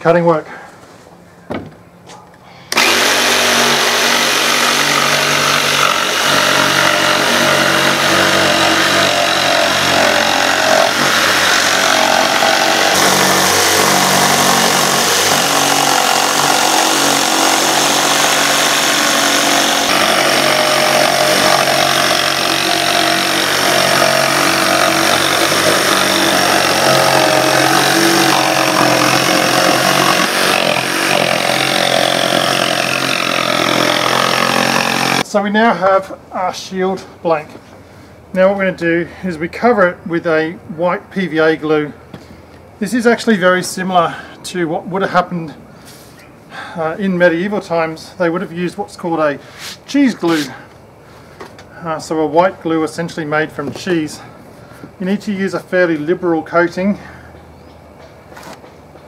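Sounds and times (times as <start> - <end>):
jigsaw cutting plywood: 2.7 - 35.2.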